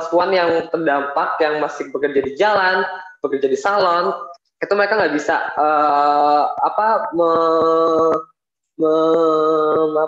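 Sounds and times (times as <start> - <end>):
man holding hesitation syllable: 5.7 - 10.0.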